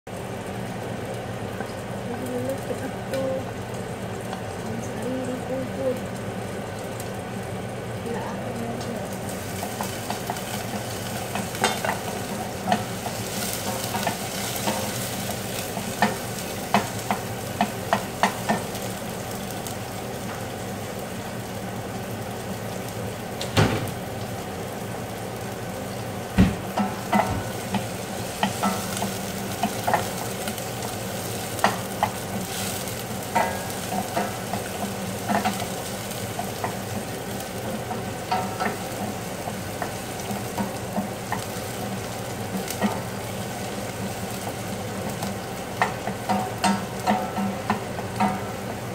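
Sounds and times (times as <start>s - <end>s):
sizzling hiss from a pot: 0.1s - 48.9s.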